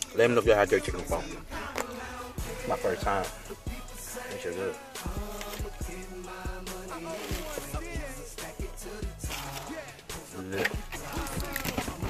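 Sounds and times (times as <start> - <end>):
person speaking: 0.0 - 5.7
music with vocals: 0.0 - 12.0.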